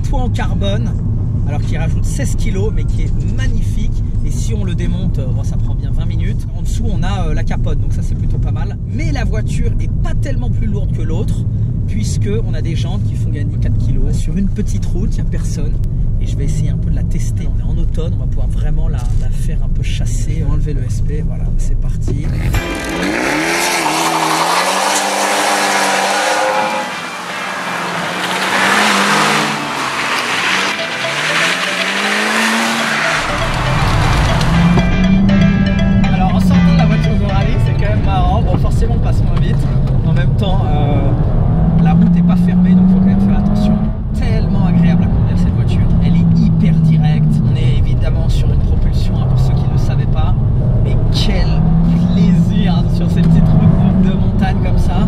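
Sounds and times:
car engine revving hard: 0:22.2 - 0:35.4.

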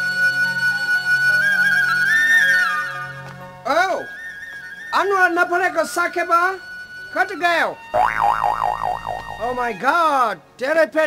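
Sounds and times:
cartoon wobble sound effect: 0:08.0 - 0:09.6
low hum: 0:08.0 - 0:09.6.

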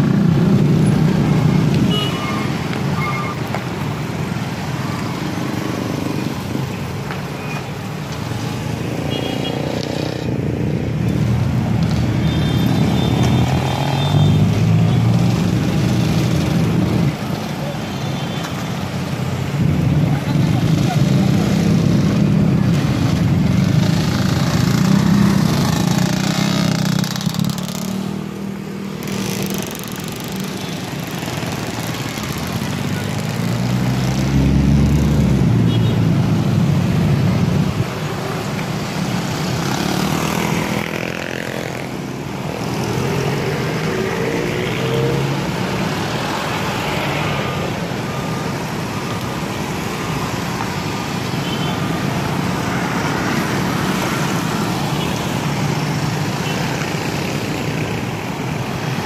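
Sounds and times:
motorcycle and car engines: 0:00.0 - 0:59.0.

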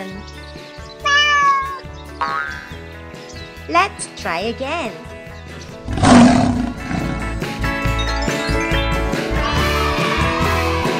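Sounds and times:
background music: 0:00.0 - 0:10.9
lion roar: 0:05.8 - 0:07.6.

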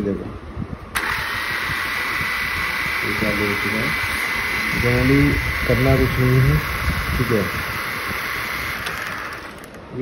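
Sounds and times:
drone propeller motors whining: 0:01.0 - 0:09.8.

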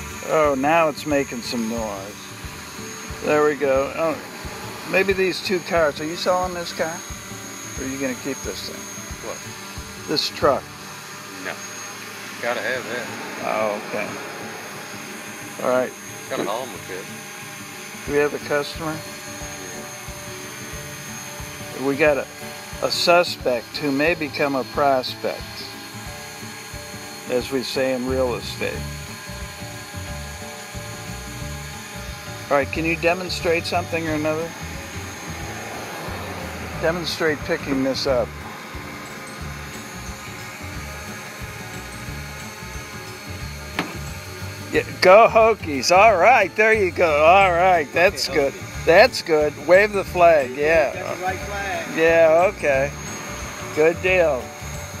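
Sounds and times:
drone propeller whine: 0:00.0 - 0:55.0
quadcopter hovering: 0:00.0 - 0:55.0.

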